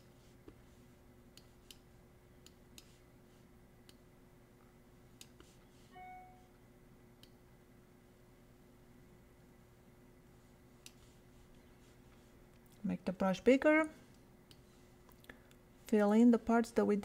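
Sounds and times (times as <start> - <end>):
faint room hum: 0.0 - 17.0
soft computer mouse clicks: 1.3 - 2.9, 3.8 - 4.0, 5.2 - 5.5, 10.8 - 11.0
brief soft tone: 5.9 - 6.6.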